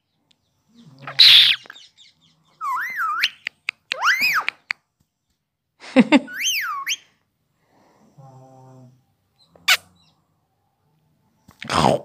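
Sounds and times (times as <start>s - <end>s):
parakeet squawk: 1.0s - 1.8s
parakeet whistling: 6.3s - 7.0s.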